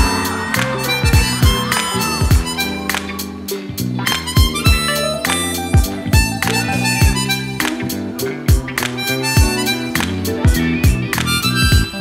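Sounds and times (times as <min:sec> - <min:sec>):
harmonica melody: 0:00.0 - 0:08.2, 0:09.0 - 0:12.0
backing track of bass and drums: 0:00.0 - 0:12.0.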